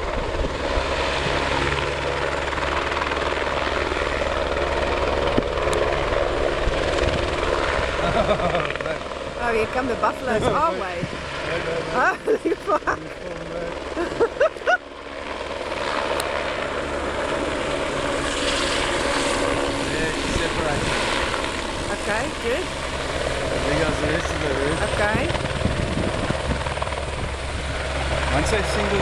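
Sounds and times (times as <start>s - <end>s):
helicopter flying close by: 0.0s - 29.0s.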